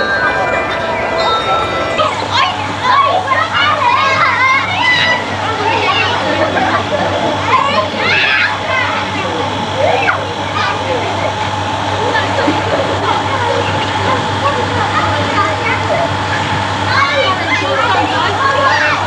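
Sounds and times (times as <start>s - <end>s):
background voices: 0.0s - 3.5s
children shouting: 0.0s - 19.0s.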